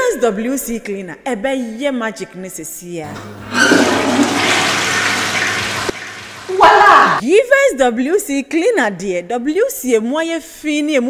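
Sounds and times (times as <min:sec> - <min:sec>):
toilet flushing: 0:03.1 - 0:07.2.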